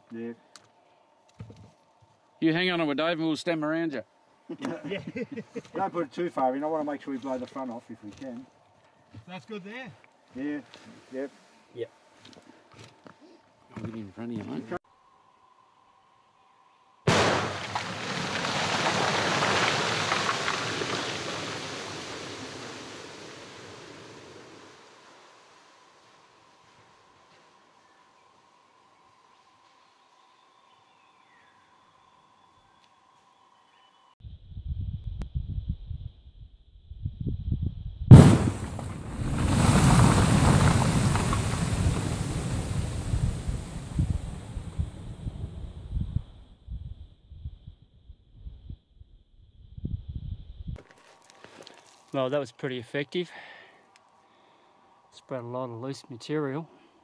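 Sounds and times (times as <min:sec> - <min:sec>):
explosive blast: 0:17.1 - 0:19.1, 0:38.1 - 0:44.6
sharp loud crack: 0:17.1 - 0:21.1, 0:38.1 - 0:43.2
low rumble of ground caving in: 0:17.1 - 0:25.6, 0:34.3 - 0:50.8
wind buffeting on microphone: 0:34.2 - 0:48.8, 0:49.4 - 0:50.8.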